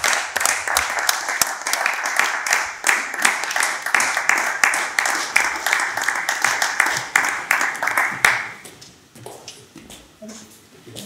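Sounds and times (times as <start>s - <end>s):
applause: 0.0s - 8.6s.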